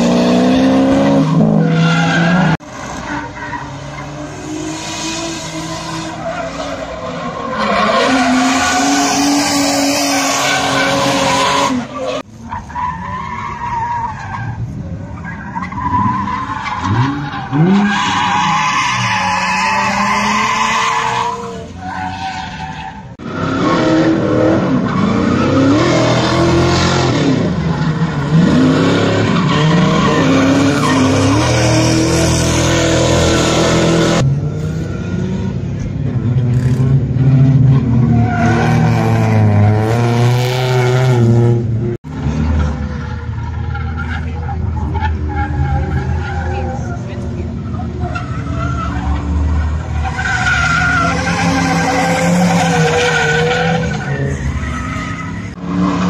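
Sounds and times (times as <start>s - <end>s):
car engines revving: 0.0s - 56.0s.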